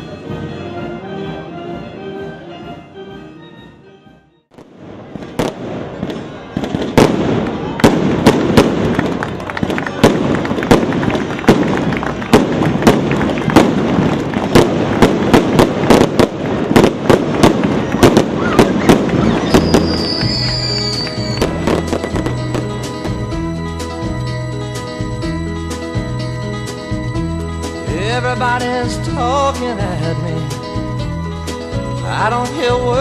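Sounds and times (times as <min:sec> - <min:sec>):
music: 0:00.0 - 0:14.7, 0:17.5 - 0:33.0
firecracker bangs: 0:04.5 - 0:23.4.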